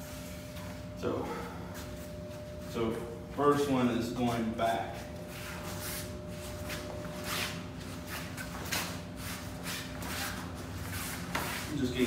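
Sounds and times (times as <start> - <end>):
steady low hum: 0.0 - 12.0
feet shuffling on foam mats: 4.2 - 12.0.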